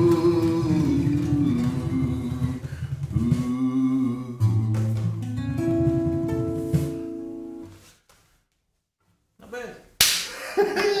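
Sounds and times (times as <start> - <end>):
sharp hand slap: 10.0 - 10.4.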